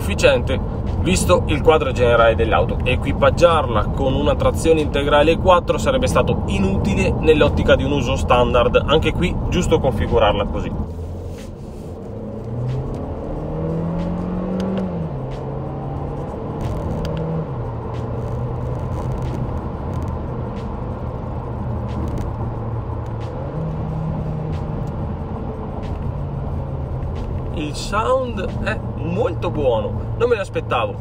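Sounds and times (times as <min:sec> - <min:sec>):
car engine accelerating: 0:00.0 - 0:31.0.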